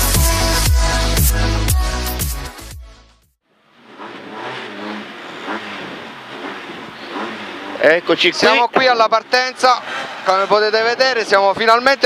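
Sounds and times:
rally car engine idling: 0:03.5 - 0:12.0.

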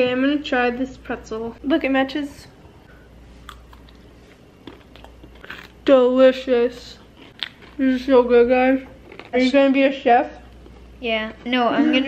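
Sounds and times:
chewing pretzel: 0:03.4 - 0:05.8, 0:06.8 - 0:09.5.

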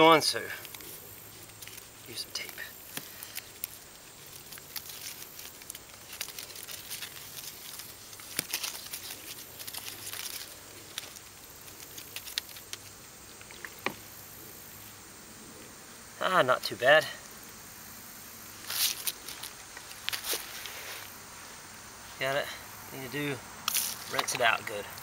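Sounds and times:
tape crackling and ripping: 0:00.5 - 0:13.0, 0:18.6 - 0:21.1, 0:23.6 - 0:24.5.

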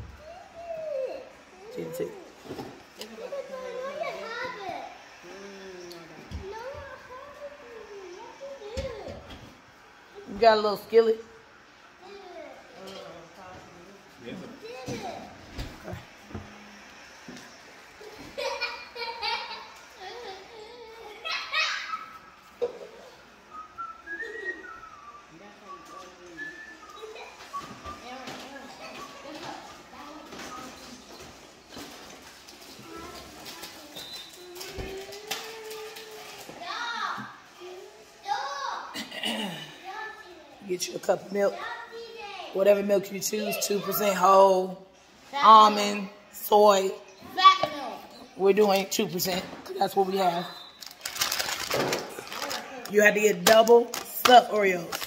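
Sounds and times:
woman speaking: 0:10.3 - 0:11.3, 0:42.6 - 0:44.8, 0:45.4 - 0:47.0, 0:48.4 - 0:50.6, 0:52.9 - 0:55.0
plastic package crinkling: 0:50.8 - 0:55.0.

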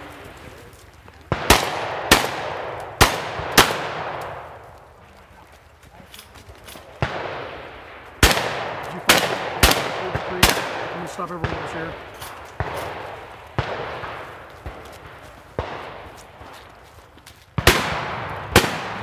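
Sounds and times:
shotgun shots with echo: 0:01.3 - 0:04.6, 0:07.0 - 0:16.7, 0:17.6 - 0:19.0.

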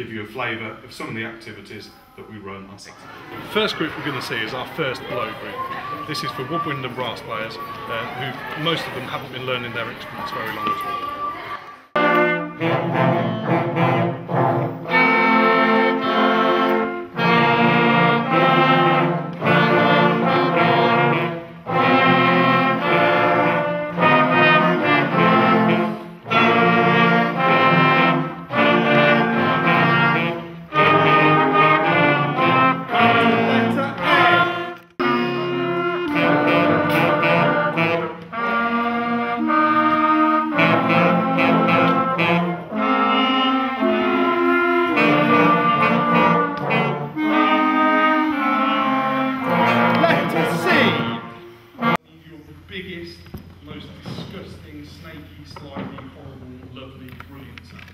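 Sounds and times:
wind band playing simple tune: 0:04.0 - 0:52.3.

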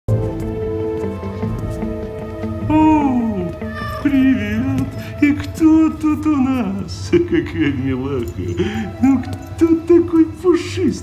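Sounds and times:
soft background music: 0:00.1 - 0:11.0
cat meowing: 0:03.6 - 0:04.2.

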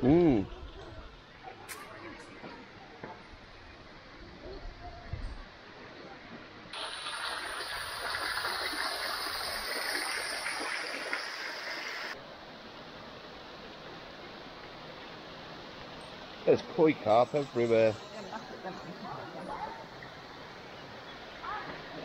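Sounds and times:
water falling and splashing: 0:06.8 - 0:12.2.

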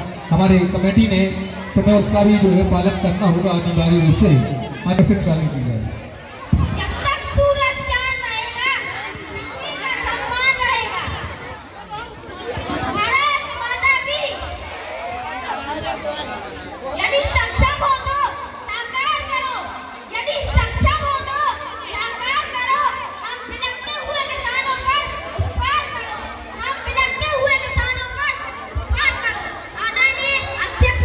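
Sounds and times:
murmur of children's crowd: 0:00.0 - 0:31.0
schoolchildren talking and calling out: 0:00.0 - 0:31.0.

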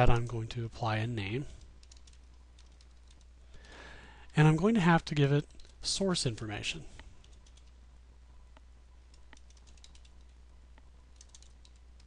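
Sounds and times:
low steady hum: 0:00.0 - 0:12.0
typing on computer keyboard: 0:01.6 - 0:03.8, 0:07.2 - 0:07.8, 0:09.1 - 0:10.4, 0:11.1 - 0:12.0.

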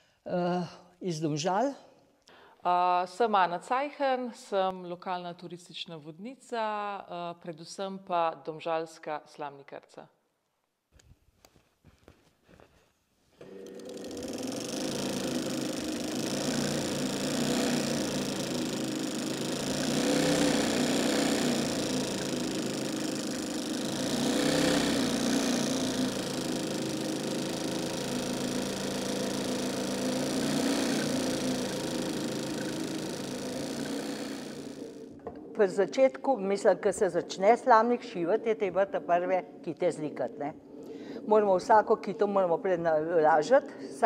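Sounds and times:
sewing machine running: 0:13.4 - 0:35.1.

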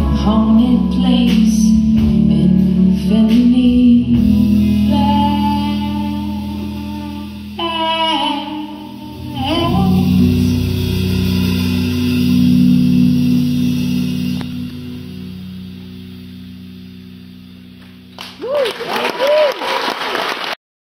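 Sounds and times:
live band chord ringing: 0:00.0 - 0:18.6
crowd applause and cheers: 0:17.8 - 0:20.6.

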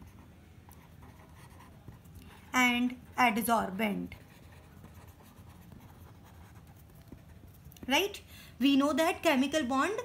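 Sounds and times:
pen scratching on paper: 0:00.0 - 0:03.4, 0:04.1 - 0:07.9.

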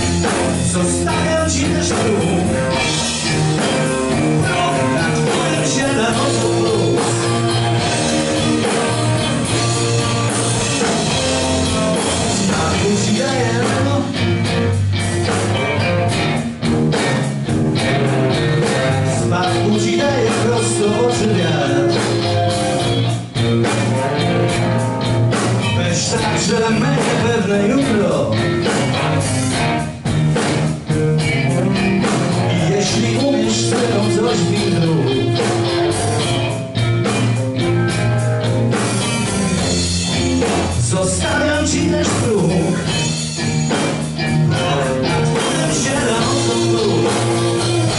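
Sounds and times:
bass: 0:00.0 - 0:47.9
drums: 0:00.0 - 0:47.9
electric guitar: 0:00.0 - 0:47.9
live blues-rock band playing: 0:00.0 - 0:47.9.

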